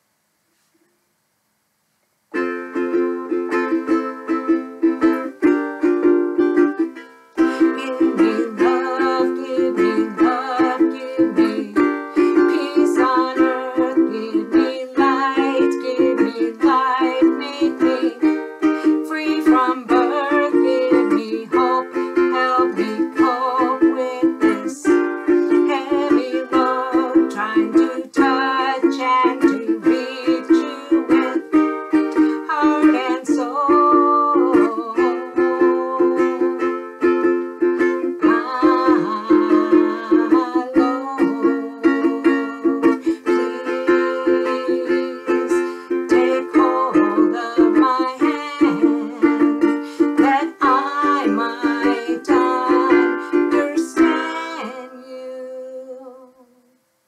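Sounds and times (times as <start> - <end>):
ukulele strumming: 2.3 - 56.7
woman singing: 7.4 - 36.7, 37.8 - 56.8.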